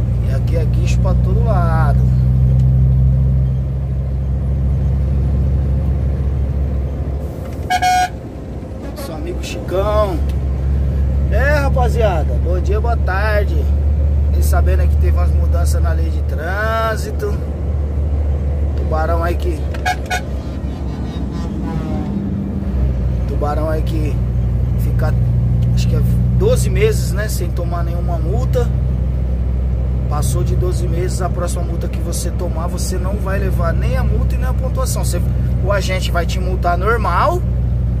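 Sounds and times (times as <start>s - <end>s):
diesel engine drone from cab: 0.0s - 38.0s.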